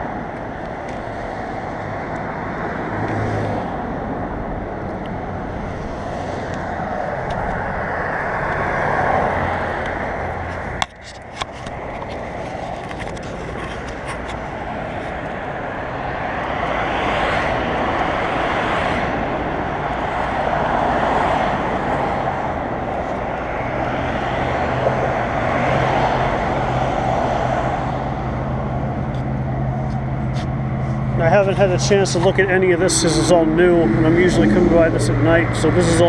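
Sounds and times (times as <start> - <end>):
bicycle tyre and road noise: 0.0 - 36.0
wind rushing over microphone: 0.0 - 36.0.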